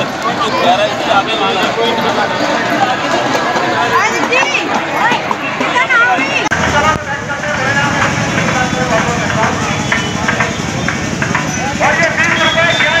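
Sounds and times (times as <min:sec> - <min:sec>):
people talking outdoors: 0:00.0 - 0:13.0.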